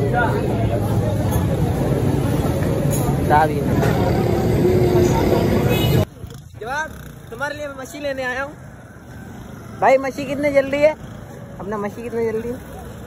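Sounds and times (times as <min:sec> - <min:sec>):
many voices talking: 0:00.0 - 0:08.5.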